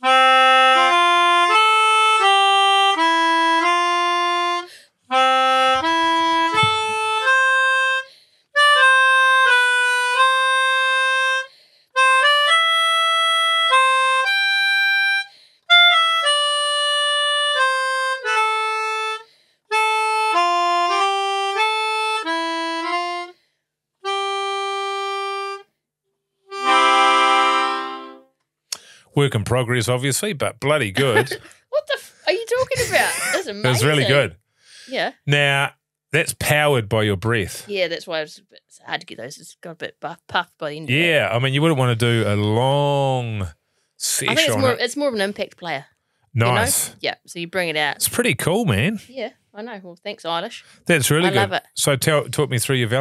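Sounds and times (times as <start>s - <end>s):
melodica tune: 0.0s - 23.3s, 24.0s - 25.6s, 26.5s - 28.3s, 29.2s - 34.3s, 40.6s - 45.8s, 46.4s - 47.0s, 50.9s - 53.0s.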